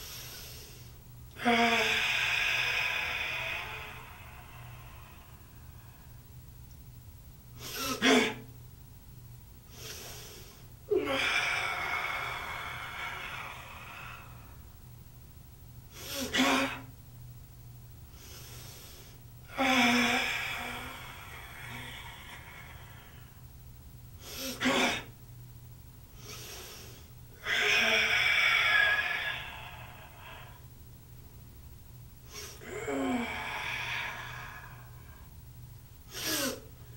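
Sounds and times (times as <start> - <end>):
long hissing exhalation: 0.0 - 6.2, 7.5 - 8.5, 9.6 - 14.8, 15.9 - 17.0, 18.1 - 23.6, 24.2 - 25.2, 26.1 - 30.8, 32.2 - 35.4, 36.0 - 36.9.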